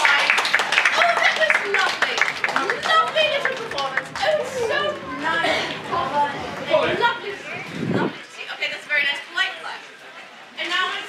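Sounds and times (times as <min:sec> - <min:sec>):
hand claps: 0:00.0 - 0:04.4
voices calling out: 0:00.0 - 0:08.3.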